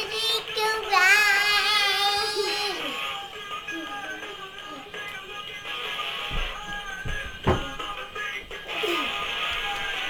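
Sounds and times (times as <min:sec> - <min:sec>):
young child singing: 0:00.0 - 0:03.0
background music: 0:00.0 - 0:10.0.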